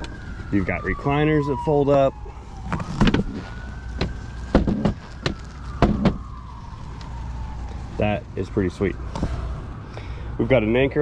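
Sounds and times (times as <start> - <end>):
sharp knocks: 4.0 - 6.2.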